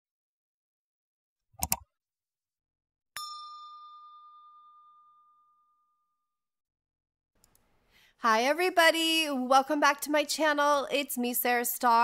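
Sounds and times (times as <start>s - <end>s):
bell-like ding: 3.2s - 6.4s.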